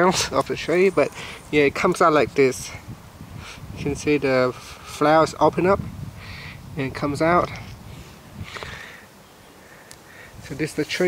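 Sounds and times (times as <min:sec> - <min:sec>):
breath through the nose: 0:03.3 - 0:03.7, 0:06.2 - 0:06.7, 0:07.8 - 0:10.4
faint click: 0:09.8 - 0:10.0.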